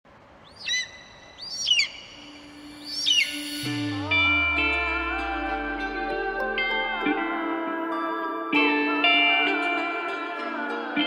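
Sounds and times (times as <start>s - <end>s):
high bird cries: 0.4s - 3.8s
low music drone: 1.9s - 11.0s
deep bass note: 2.6s - 7.6s.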